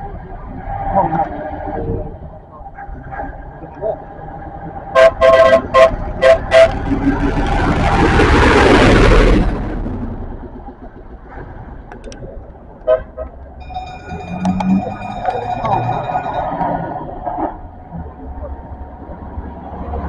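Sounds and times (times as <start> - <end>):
fire engine passing by: 3.6 - 11.7
fire engine horn toots: 4.9 - 6.9, 12.8 - 13.4.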